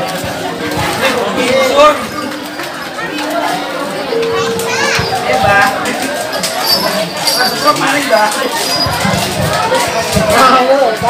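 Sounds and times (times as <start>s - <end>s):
children shouting and calling: 0.0s - 11.0s
crowd chatter: 0.0s - 11.0s.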